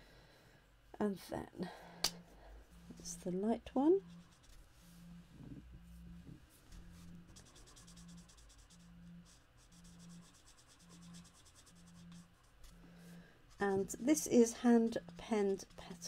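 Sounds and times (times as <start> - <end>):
faint pulsing low hum: 0.0 - 16.0
marker scratching on card: 4.0 - 4.6, 6.8 - 12.8.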